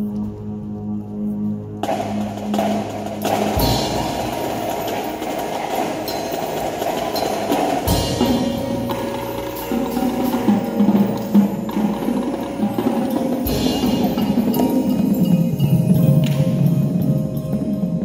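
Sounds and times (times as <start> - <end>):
percussion ensemble playing: 1.8 - 18.0.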